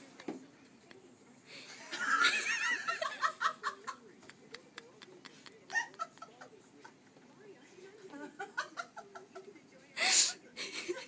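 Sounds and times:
faint laughter: 0:01.7 - 0:07.2, 0:08.0 - 0:11.0.

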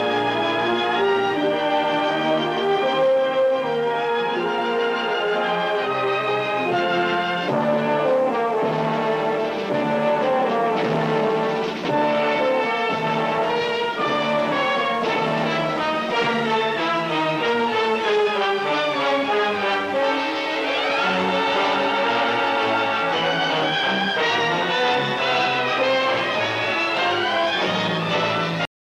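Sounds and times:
orchestral music with brass: 0:00.0 - 0:28.7.

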